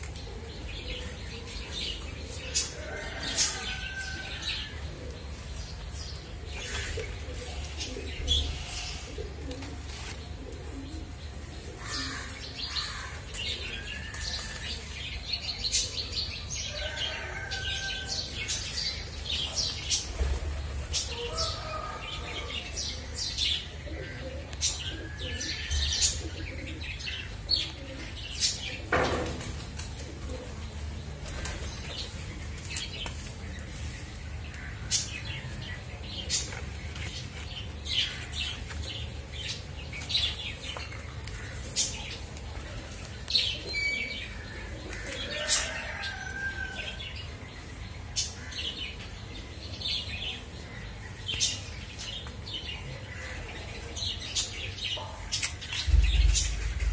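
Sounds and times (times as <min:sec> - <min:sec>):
steady low rumble: 0:55.8 - 0:56.9.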